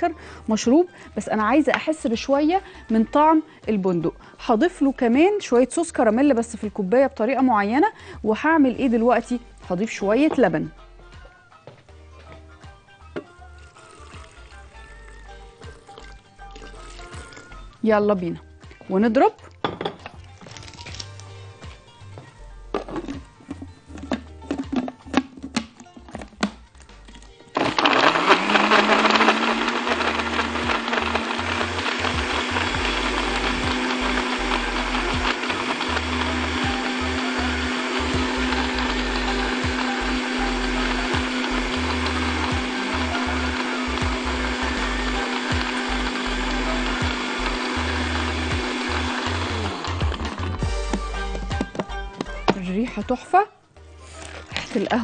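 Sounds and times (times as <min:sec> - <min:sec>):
electric blender motor humming: 0:27.6 - 0:51.5.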